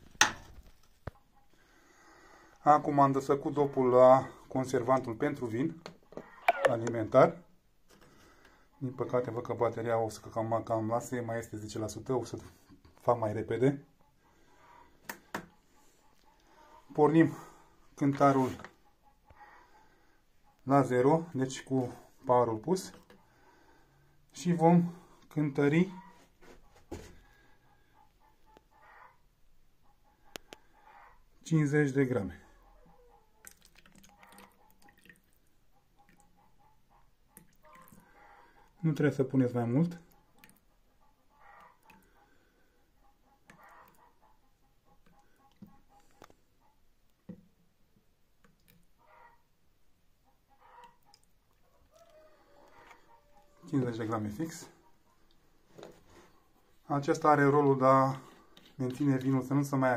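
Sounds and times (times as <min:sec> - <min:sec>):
faint handling noise: 0:55.3 - 0:59.6.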